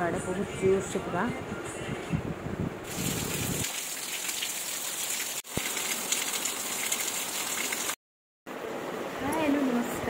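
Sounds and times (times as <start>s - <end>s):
heavy rain on pavement: 2.9s - 8.0s.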